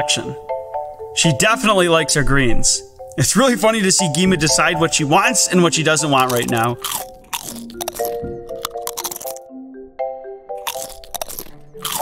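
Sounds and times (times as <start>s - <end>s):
background music with held notes: 0.0s - 12.0s
kangaroo chewing lettuce crunches: 6.2s - 9.4s, 10.6s - 12.0s.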